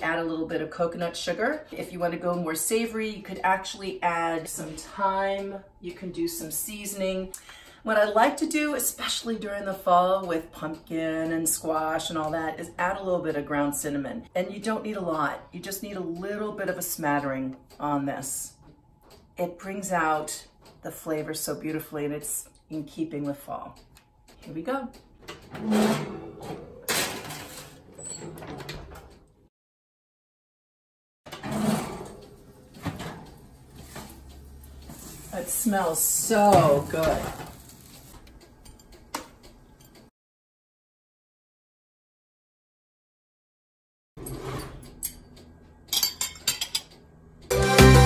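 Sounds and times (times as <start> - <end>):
oven door opening: 25.2 - 29.2, 31.3 - 34.2
oven door shutting: 25.3 - 29.1
metal pan sliding onto oven rack: 25.5 - 28.6, 31.3 - 33.2
pan clattering over rack: 25.6 - 27.8
loud music: 47.5 - 48.0.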